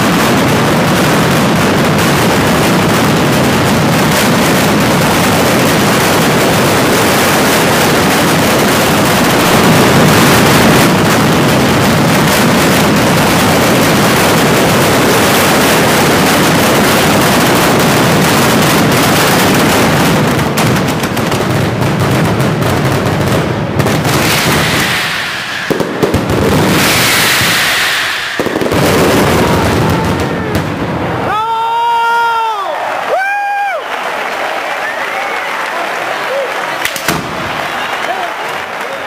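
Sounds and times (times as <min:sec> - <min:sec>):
firecrackers exploding: 0:00.0 - 0:39.0
hissing rushes: 0:23.9 - 0:31.0.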